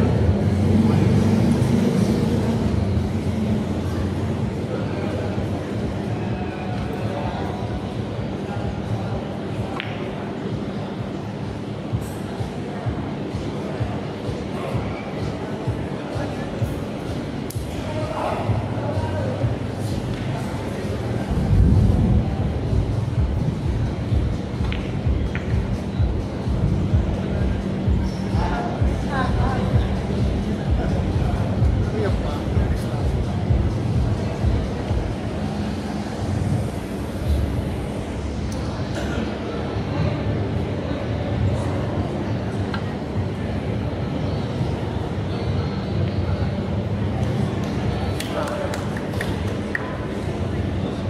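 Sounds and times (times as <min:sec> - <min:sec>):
low rumble of hall ambience: 0:00.0 - 0:51.0
low background rumble: 0:20.9 - 0:38.9.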